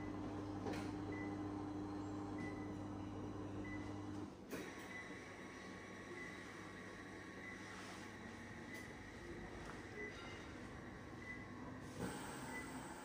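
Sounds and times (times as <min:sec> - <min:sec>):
massage chair motor hum: 0:00.0 - 0:09.8
mechanical whir with high tone: 0:11.2 - 0:13.0.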